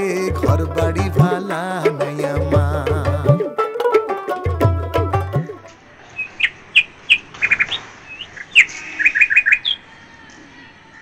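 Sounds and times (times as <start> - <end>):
birds chirping: 5.7 - 11.0.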